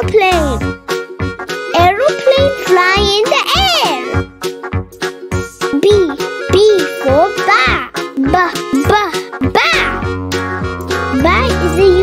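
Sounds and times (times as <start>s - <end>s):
children's song backing music: 0.0s - 12.0s.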